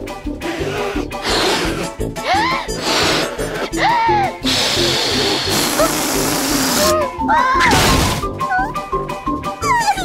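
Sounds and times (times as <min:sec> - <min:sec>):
cartoon background music: 0:00.0 - 0:10.0
cartoon bunny vocal cries: 0:06.7 - 0:07.8, 0:08.4 - 0:08.8, 0:09.6 - 0:10.0.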